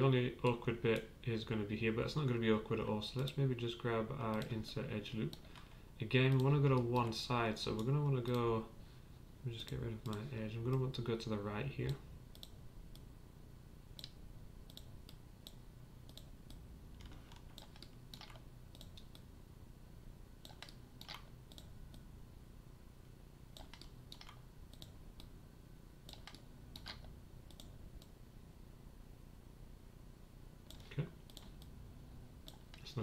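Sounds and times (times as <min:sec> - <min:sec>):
low room hum: 0:00.0 - 0:33.0
mouse and keyboard clicking: 0:14.0 - 0:19.2, 0:20.4 - 0:22.0, 0:23.6 - 0:25.3, 0:26.1 - 0:28.1.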